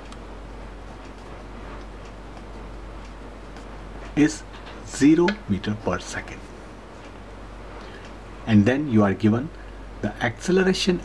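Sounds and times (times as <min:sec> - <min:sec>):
steady low hum: 0:00.0 - 0:11.0
pen scratching on paper: 0:03.4 - 0:04.1.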